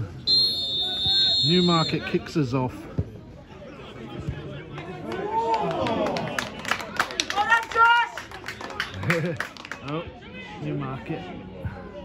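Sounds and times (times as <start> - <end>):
footballers shouting: 0.3 - 2.3.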